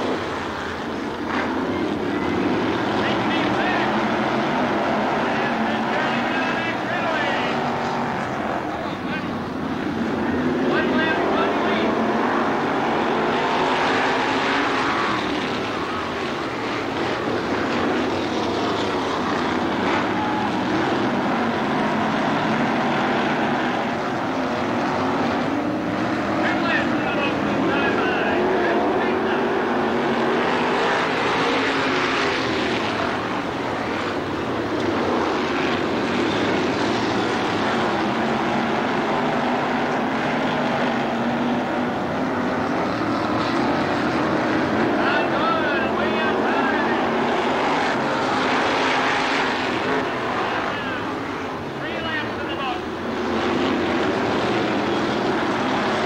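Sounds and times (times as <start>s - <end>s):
race car engines running: 0.0s - 56.0s.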